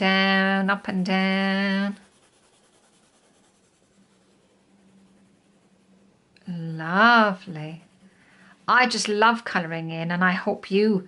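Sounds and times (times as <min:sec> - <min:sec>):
pencil scratching on paper: 0:00.0 - 0:09.9.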